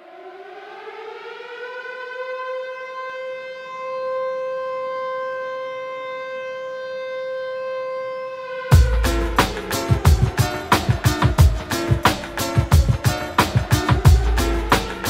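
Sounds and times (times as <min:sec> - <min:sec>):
air raid style siren: 0:00.0 - 0:15.0.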